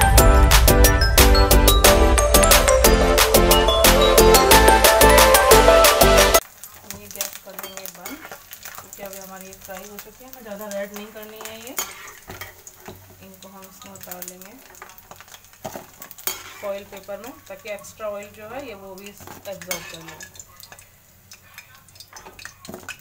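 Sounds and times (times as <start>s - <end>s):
music: 0.0s - 6.4s
food frying in hot oil: 6.3s - 23.0s
spoon clinking against pan: 7.6s - 8.4s, 19.0s - 23.0s.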